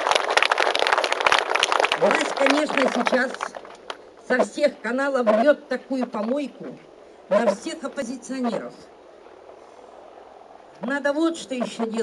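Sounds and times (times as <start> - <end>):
crowd clapping: 0.0 - 4.0.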